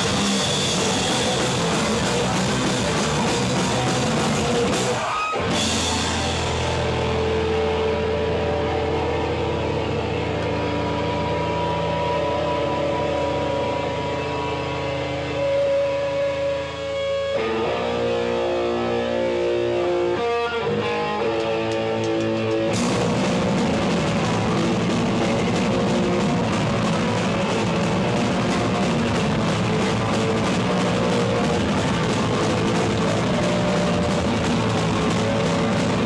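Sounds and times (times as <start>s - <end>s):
drums: 0.0s - 36.0s
electric guitar held notes: 0.0s - 36.0s
rock band playing: 0.0s - 36.0s.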